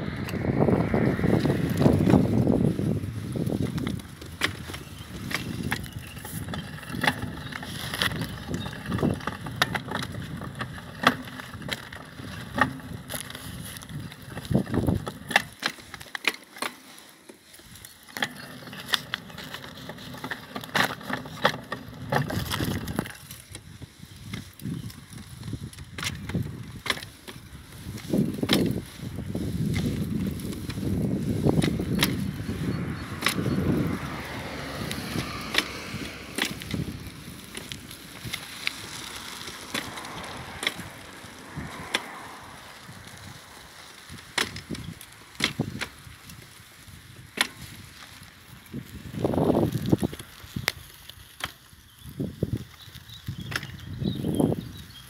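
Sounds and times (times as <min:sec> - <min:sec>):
low rumbling: 0:00.0 - 0:15.2, 0:27.5 - 0:44.0.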